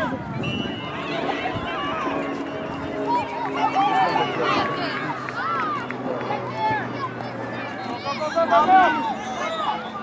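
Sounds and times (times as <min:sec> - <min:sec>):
people calling and shouting: 0:00.0 - 0:10.0.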